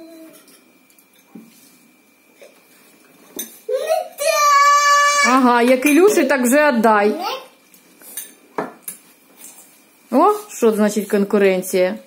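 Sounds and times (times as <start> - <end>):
spoons clinking against bowls: 8.0 - 9.0.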